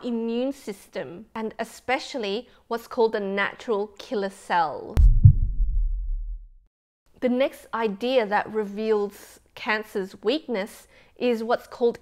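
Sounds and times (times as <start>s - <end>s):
deep heavy thuds: 5.0s - 6.5s.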